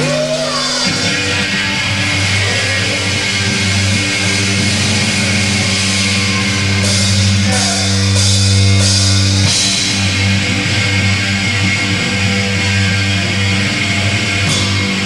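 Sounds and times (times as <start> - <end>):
drums with cymbal crashes: 0.0 - 15.0
electric guitars and bass chords: 0.0 - 15.0.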